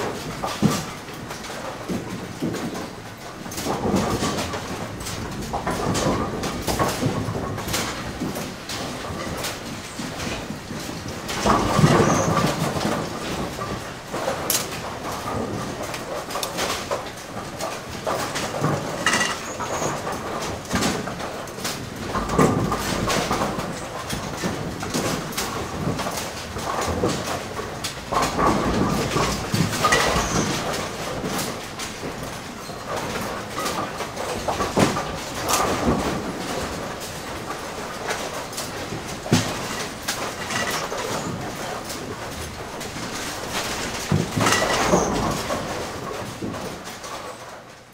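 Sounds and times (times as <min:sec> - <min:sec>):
pinsetter machinery clanking: 0:00.0 - 0:47.9.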